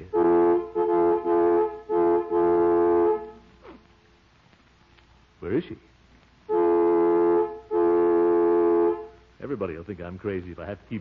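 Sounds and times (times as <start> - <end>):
car horn blasts: 0.0 - 3.5, 6.5 - 9.2.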